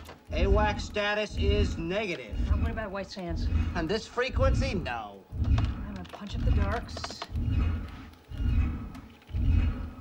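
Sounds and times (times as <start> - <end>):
low rhythmic throbbing: 0.0 - 10.0.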